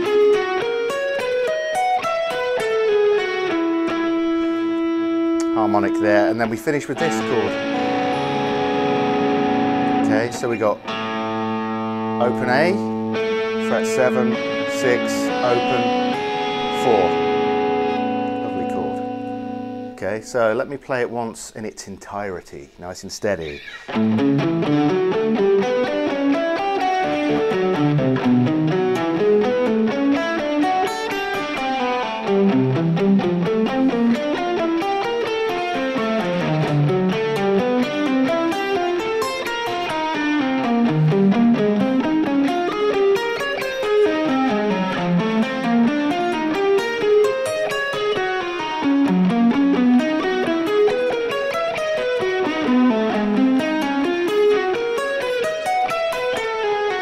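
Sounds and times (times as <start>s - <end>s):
electric guitar arpeggios: 0.0s - 20.6s, 23.4s - 57.0s.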